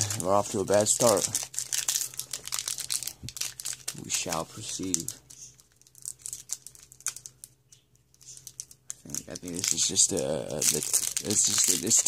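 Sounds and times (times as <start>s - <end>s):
foil wrapper crinkling and tearing: 0.0s - 12.0s.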